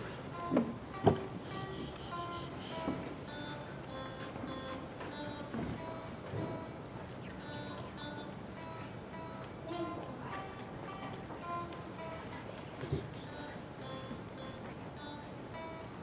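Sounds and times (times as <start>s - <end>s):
electric guitar melody: 0.0s - 16.0s.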